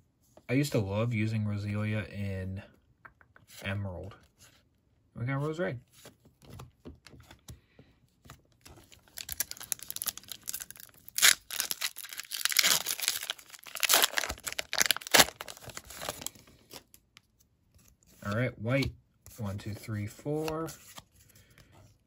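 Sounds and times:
foil wrapper tearing: 9.1 - 16.8.

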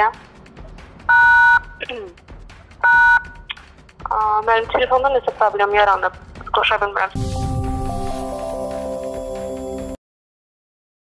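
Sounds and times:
dual-tone telephone beeps: 1.1 - 1.8, 2.8 - 3.4.

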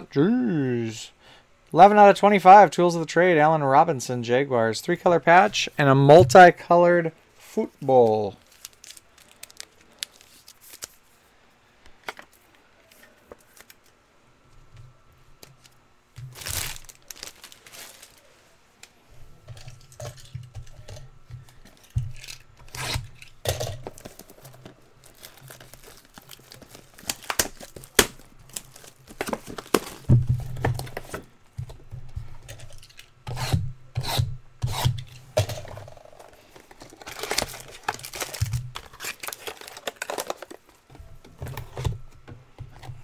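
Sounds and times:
wrapper tearing and crinkling: 8.3 - 11.0, 16.2 - 18.3, 21.8 - 30.1, 36.7 - 40.8.

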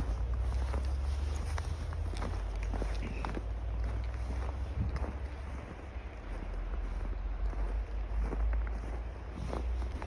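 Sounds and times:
footsteps crunching in snow: 0.0 - 10.0
wind buffeting microphone: 0.0 - 10.0.

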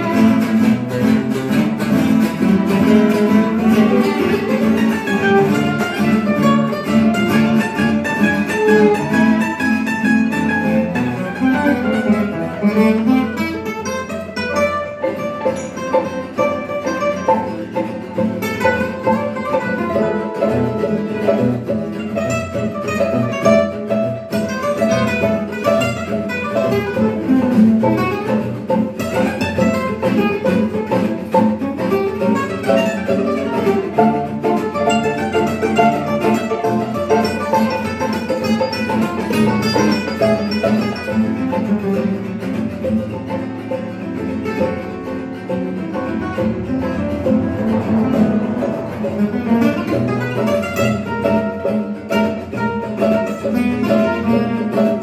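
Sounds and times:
picked guitar melody: 0.0 - 55.0
strummed rhythm guitar: 0.0 - 55.0.

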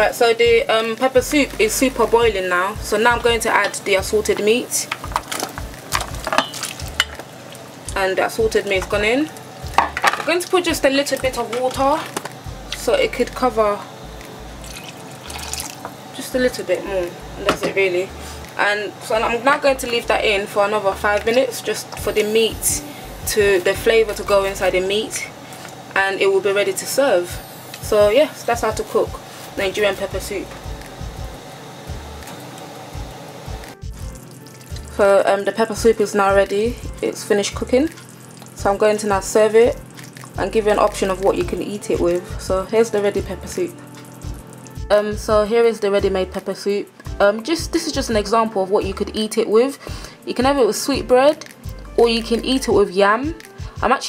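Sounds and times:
soup boiling in a pot: 3.9 - 12.8, 13.4 - 17.5, 28.9 - 35.4, 37.3 - 42.4, 43.1 - 44.9
low thumps: 30.0 - 32.3.

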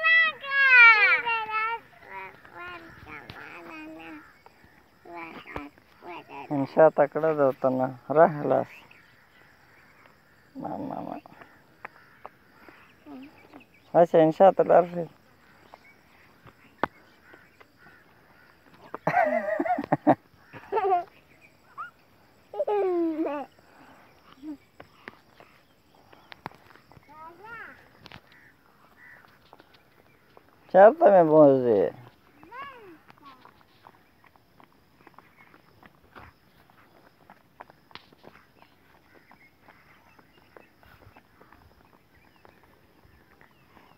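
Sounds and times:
quavering animal calls: 0.0 - 7.0, 8.2 - 14.0, 14.7 - 30.9, 38.1 - 43.9
footsteps on dirt path: 0.0 - 43.9.

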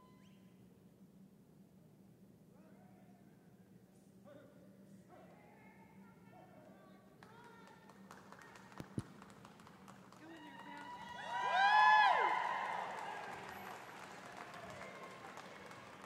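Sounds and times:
echoing human call: 10.2 - 16.0.

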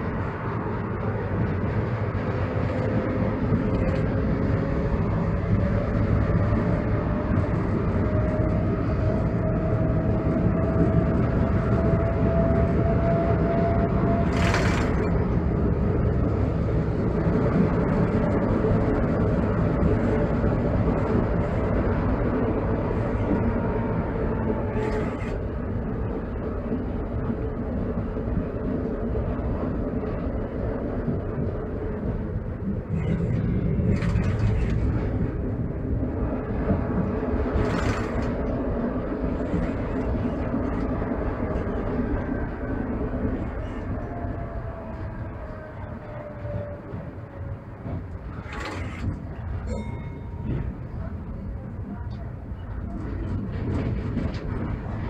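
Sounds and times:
tram wheels and motors running: 0.0 - 55.0.

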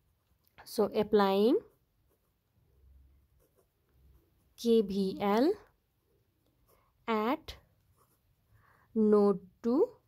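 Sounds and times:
ballpoint pen scratching paper: 1.4 - 2.6, 3.2 - 4.9, 6.6 - 8.4.

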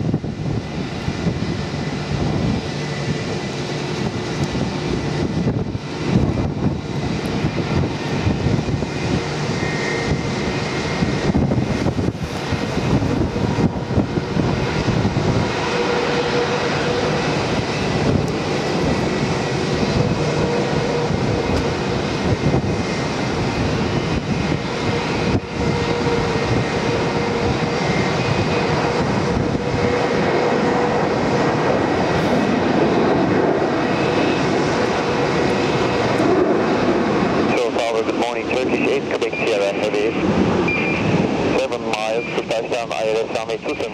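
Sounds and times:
jet engines roaring: 0.0 - 43.9.

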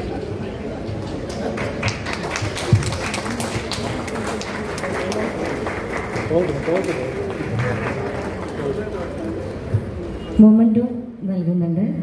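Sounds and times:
murmur of voices: 0.0 - 12.0
audience clapping: 1.0 - 9.5.

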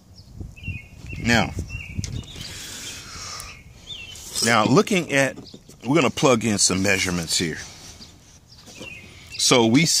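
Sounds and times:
bird chirp: 0.0 - 10.0.

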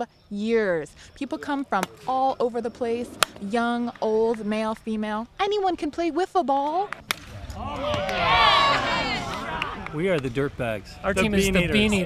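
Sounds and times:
plastic bat hitting ball: 6.9 - 8.2
people shouting and cheering: 7.3 - 10.1.

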